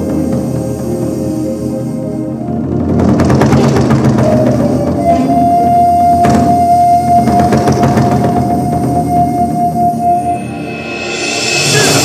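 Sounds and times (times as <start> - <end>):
barrel drums beaten fast: 2.7 - 10.2
high held note: 4.2 - 12.0.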